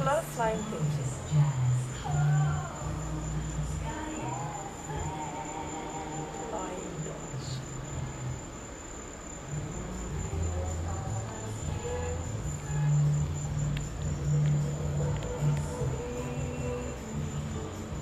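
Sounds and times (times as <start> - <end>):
crickets trilling: 0.0 - 18.0
music with low bass notes: 9.4 - 18.0.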